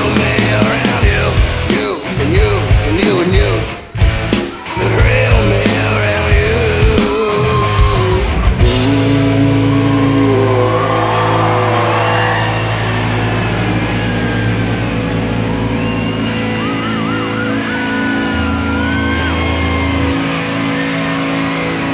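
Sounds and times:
distorted rock band chord: 0.0s - 21.9s.

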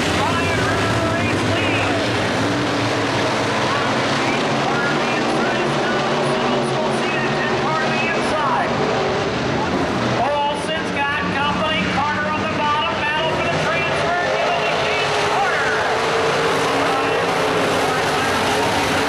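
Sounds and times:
race car engines passing: 0.0s - 19.0s.

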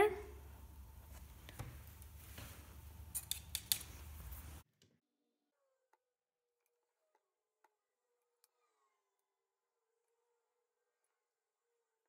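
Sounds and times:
low steady room hum: 0.0s - 4.6s.

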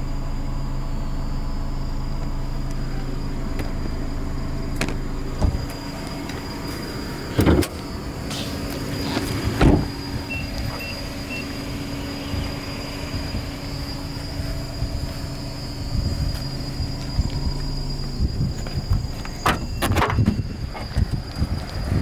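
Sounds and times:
car engine idling: 0.0s - 22.0s
heavy thumps: 4.8s - 5.8s.

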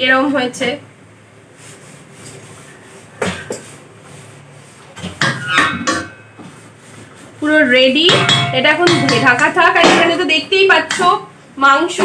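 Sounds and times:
metal spoon scraping metal pot: 5.2s - 6.5s, 8.1s - 9.5s.

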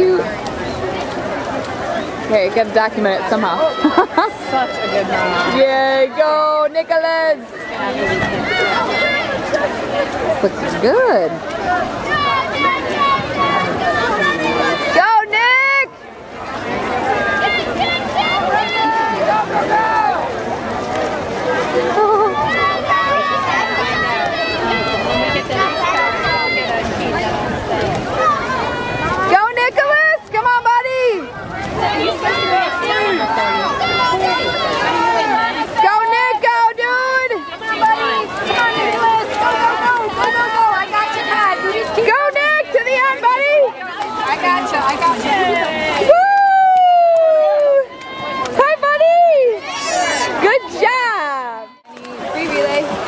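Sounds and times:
spectators yelling and cheering: 0.0s - 53.0s.

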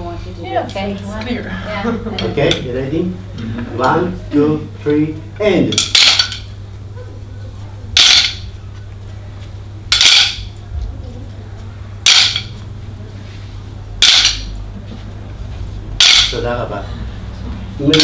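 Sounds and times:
wooden sticks clacking: 5.7s - 6.6s, 7.9s - 9.1s, 9.9s - 10.9s, 11.6s - 12.7s, 14.0s - 14.7s, 16.0s - 16.6s.

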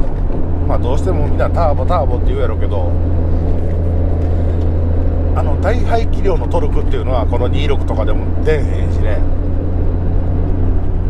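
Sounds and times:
car engine low drone: 0.0s - 11.0s
road noise: 0.0s - 11.0s.

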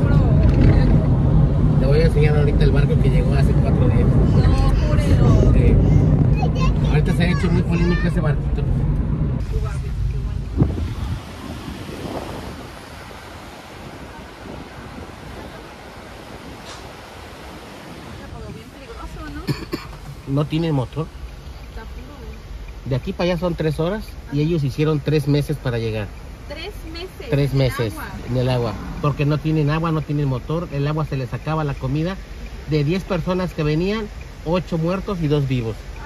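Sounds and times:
low engine rumble: 0.0s - 36.0s
road and wind noise: 0.0s - 36.0s.

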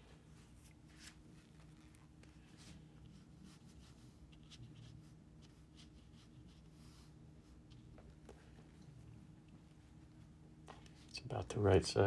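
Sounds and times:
low steady hum: 0.0s - 12.0s
brush strokes on paper: 0.3s - 7.8s.

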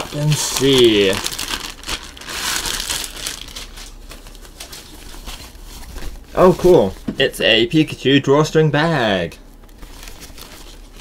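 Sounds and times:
fabric bag rustling: 0.0s - 6.2s
plastic packaging crinkling: 0.0s - 6.9s, 9.6s - 11.0s.

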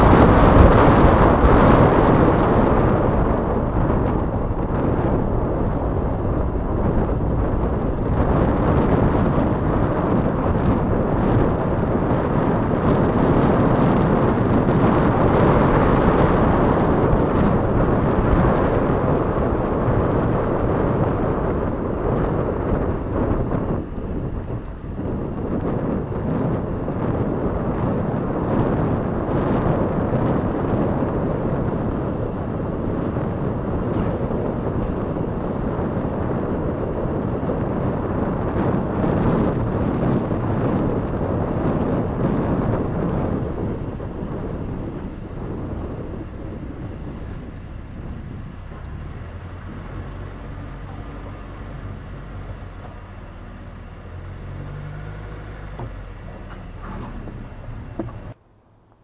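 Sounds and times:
low engine rumble: 0.0s - 59.0s
tyres rumbling on dirt road: 0.0s - 59.0s.

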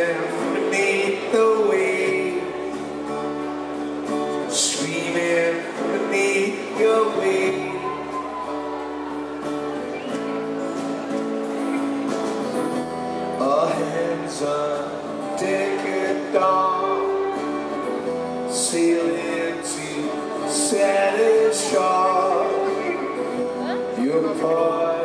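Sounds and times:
rock band playing slowly: 0.0s - 25.0s.

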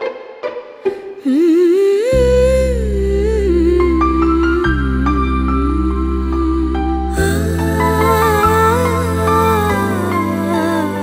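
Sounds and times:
low sustained bass note: 2.2s - 11.0s.

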